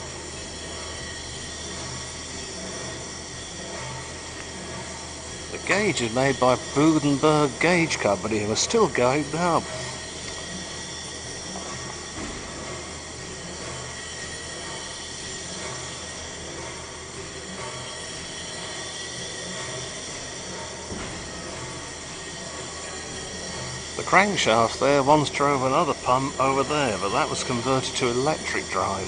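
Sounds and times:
pumping engine running: 0.0s - 29.0s.

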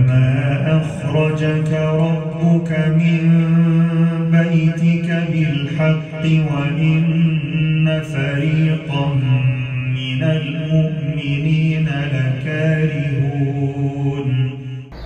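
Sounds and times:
sung chant notes: 6.2s - 15.0s.

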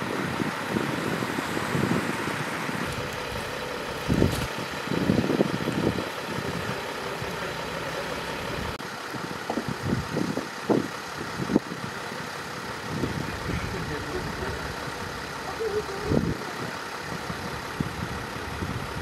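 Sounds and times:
van engine idling: 0.0s - 19.0s
voices: 0.2s - 8.8s, 12.0s - 17.8s.

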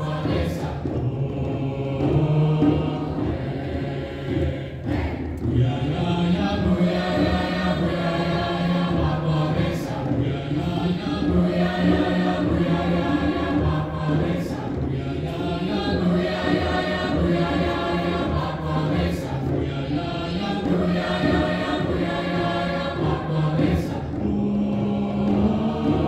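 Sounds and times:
choir singing held chords: 0.0s - 26.0s.

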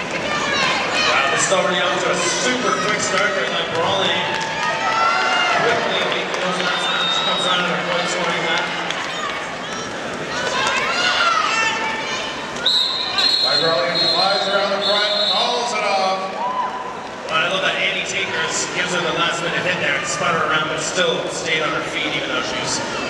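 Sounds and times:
crowd voices and shouting in hall: 0.0s - 23.0s
referee's whistle blasts: 12.6s - 15.7s.

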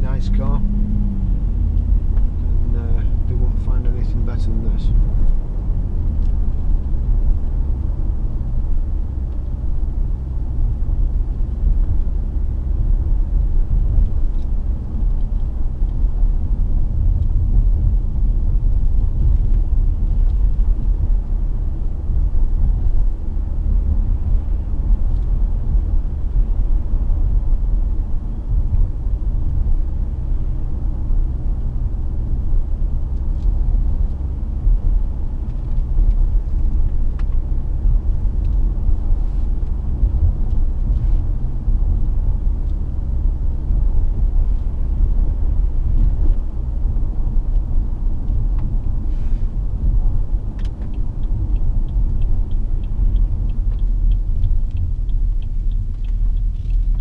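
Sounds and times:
diesel engine running: 0.0s - 57.0s
road and tyre noise: 0.0s - 57.0s.

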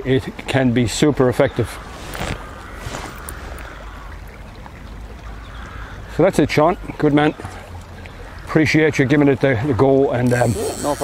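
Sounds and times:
river water rushing: 1.5s - 8.5s.

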